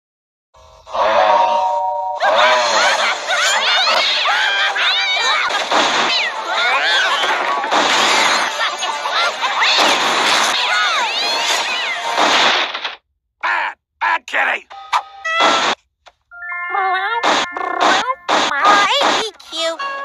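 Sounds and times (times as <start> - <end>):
chaotic noise with shrieking glides: 0.9 - 12.2
clipped voice snippets: 13.4 - 15.6, 16.7 - 19.8.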